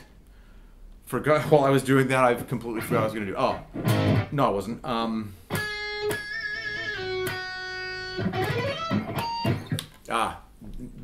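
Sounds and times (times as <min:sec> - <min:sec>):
electric guitar single notes: 0:03.8 - 0:04.4, 0:05.5 - 0:09.8.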